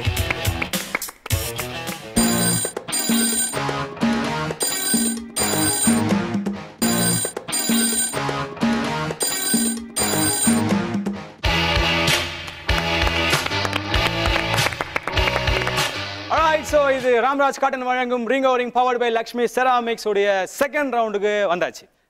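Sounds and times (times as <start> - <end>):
game show jingle: 2.2 - 3.7, 4.6 - 6.2, 6.8 - 8.4, 9.2 - 10.8
telephone bell ringing: 2.2 - 3.9, 4.6 - 6.2, 6.8 - 8.5, 9.2 - 10.8.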